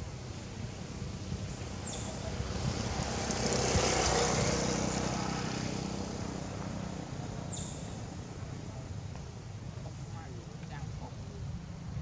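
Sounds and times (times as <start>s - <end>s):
motor vehicle passing by: 1.0s - 9.1s.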